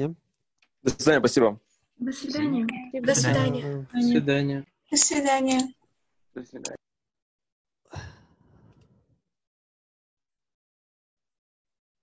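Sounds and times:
person sighing: 0:07.9 - 0:08.6.

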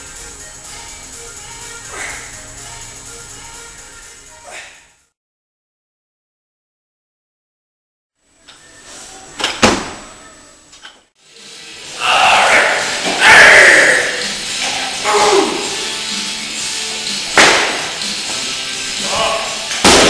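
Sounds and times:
loud music: 0:00.0 - 0:04.4, 0:11.3 - 0:20.0
sharp impact: 0:17.3 - 0:18.0
sharp slams: 0:17.3 - 0:18.0, 0:19.8 - 0:20.0.

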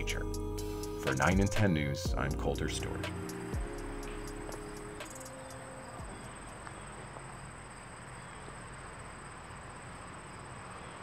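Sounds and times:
faint outdoor hiss: 0:00.0 - 0:11.0
insects trilling: 0:02.6 - 0:11.0.

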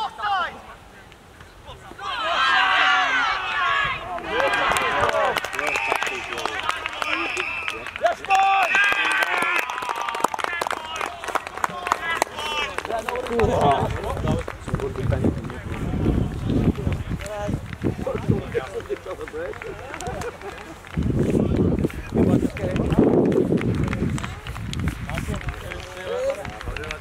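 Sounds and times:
people shouting: 0:01.7 - 0:05.3.

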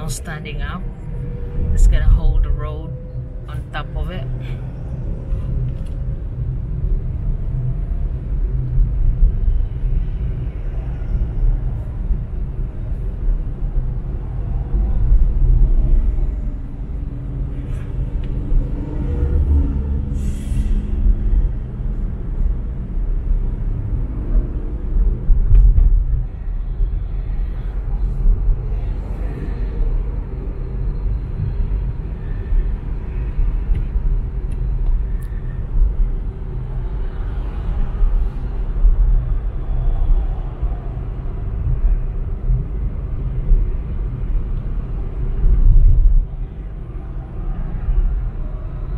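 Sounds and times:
car road and engine rumble: 0:00.0 - 0:48.9.

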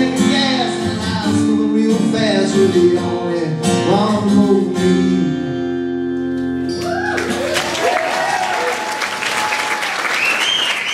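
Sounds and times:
audience applauding and cheering: 0:06.7 - 0:10.9.

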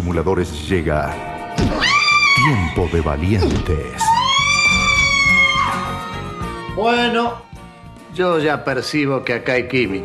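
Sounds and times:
woman screaming: 0:01.7 - 0:02.7, 0:04.0 - 0:06.5
trailer music with a beat: 0:04.8 - 0:08.5.

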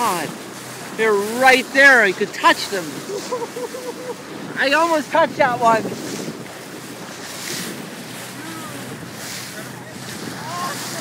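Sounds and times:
dolphins surfacing splashes: 0:00.0 - 0:11.0
water washing past boat hull: 0:00.0 - 0:11.0
wind on microphone: 0:02.8 - 0:11.0.

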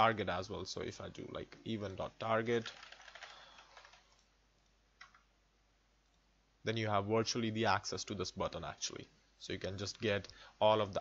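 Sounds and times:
computer keyboard typing: 0:02.6 - 0:04.3.

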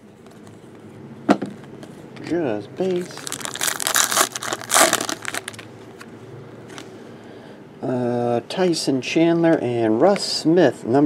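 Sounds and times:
foil wrapper crinkling: 0:02.8 - 0:05.7
card pack ripped open: 0:02.9 - 0:05.7.

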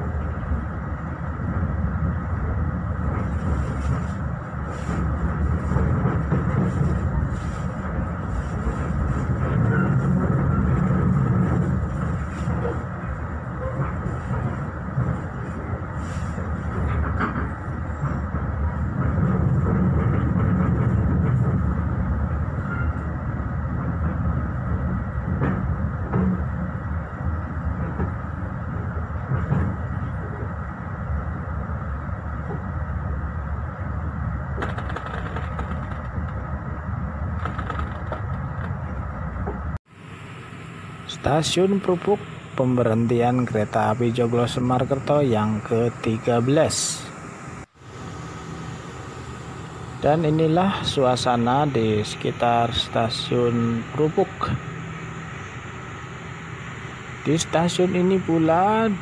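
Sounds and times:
train wheels rumbling on rails: 0:00.0 - 0:39.8
clicks from rail joints: 0:34.6 - 0:36.4, 0:37.4 - 0:38.8.

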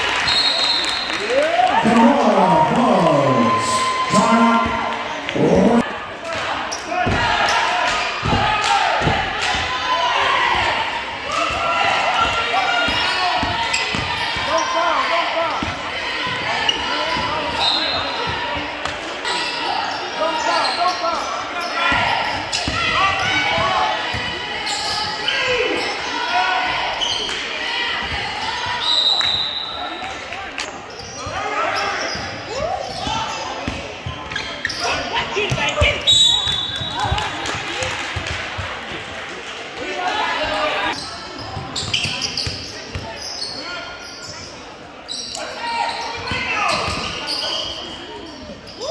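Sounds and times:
indistinct voices echoing: 0:01.3 - 0:09.8
sneakers squeaking on hardwood: 0:30.9 - 0:37.1, 0:40.9 - 0:48.9.

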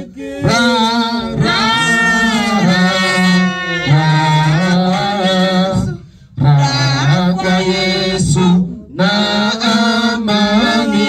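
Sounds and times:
person singing unaccompanied: 0:00.0 - 0:11.0.

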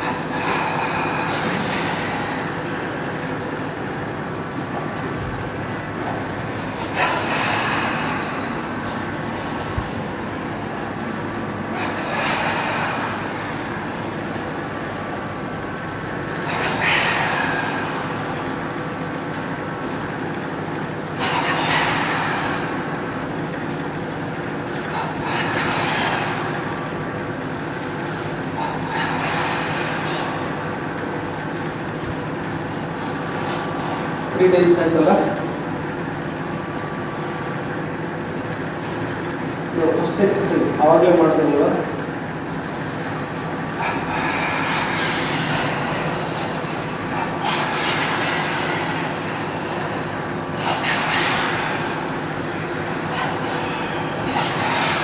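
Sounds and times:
slow deep breathing: 0:00.0 - 0:34.4, 0:42.3 - 0:55.0
steady mechanical hum: 0:00.0 - 0:55.0.

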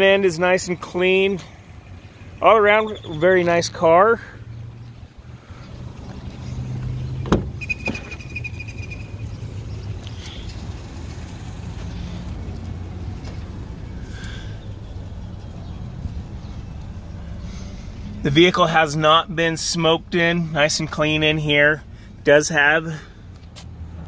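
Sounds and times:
car door opening: 0:06.1 - 0:08.5.

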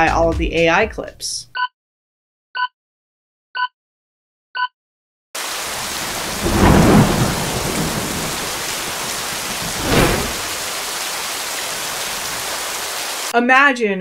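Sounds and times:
thunder rolling: 0:05.4 - 0:12.7
heavy rain: 0:05.4 - 0:13.4.

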